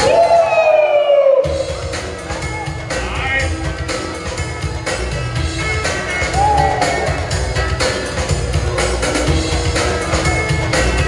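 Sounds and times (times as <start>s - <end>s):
breakdance beat music: 0.0s - 11.0s.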